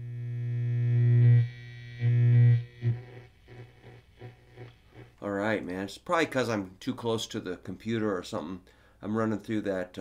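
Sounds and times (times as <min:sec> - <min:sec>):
electric guitar mains hum: 0:00.0 - 0:05.2.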